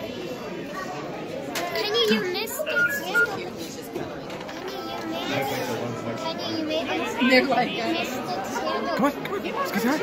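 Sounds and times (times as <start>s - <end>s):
children talking and calling out: 0.0s - 10.0s
short high beeps: 2.6s - 3.4s.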